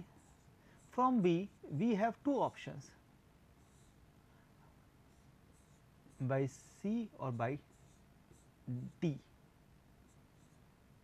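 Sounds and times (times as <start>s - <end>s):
marker pen scratching on board: 0.0s - 1.2s, 3.6s - 4.0s, 5.1s - 6.4s, 7.6s - 8.6s, 10.1s - 10.7s.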